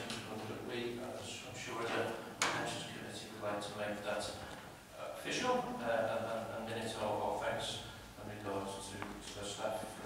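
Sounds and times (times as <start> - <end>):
man reading aloud: 0.0 - 10.0.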